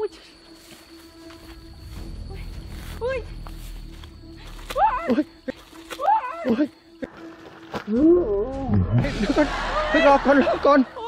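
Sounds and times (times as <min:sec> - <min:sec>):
woman crying out: 0:04.7 - 0:06.8.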